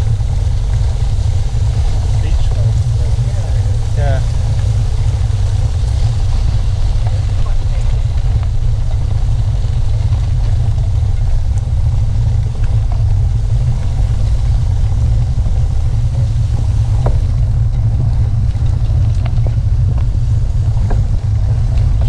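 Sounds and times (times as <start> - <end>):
tyres on gravel road: 0.0 - 22.0
wind buffeting microphone: 0.0 - 22.0.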